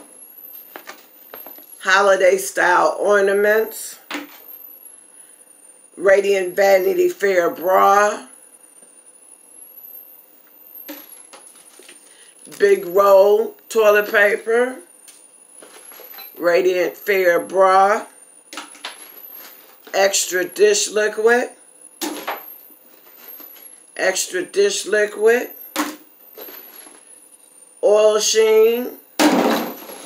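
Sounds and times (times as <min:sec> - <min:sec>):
container clattering into bin: 0:29.2 - 0:30.0.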